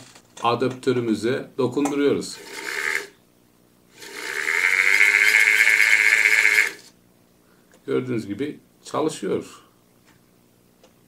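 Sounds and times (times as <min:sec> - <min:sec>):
vacuum motor whine: 0:04.0 - 0:06.9.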